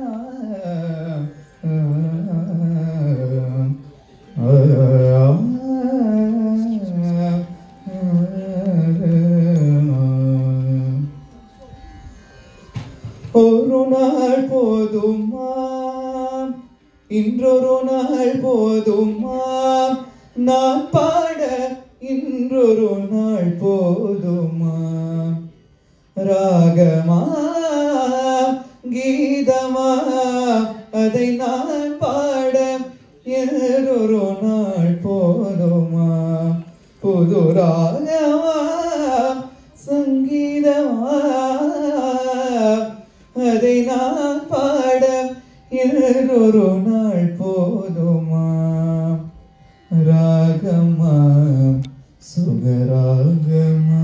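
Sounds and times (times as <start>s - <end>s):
man singing a low note: 0.0s - 11.2s
man singing unaccompanied: 0.0s - 11.4s, 13.2s - 25.6s, 26.2s - 54.0s.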